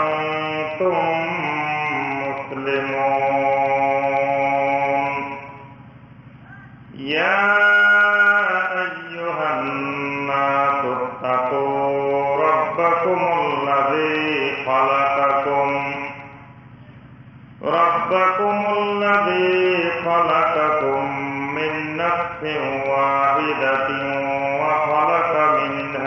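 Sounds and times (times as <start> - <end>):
man chanting: 0.0 - 5.7, 6.5 - 16.4, 17.6 - 26.0.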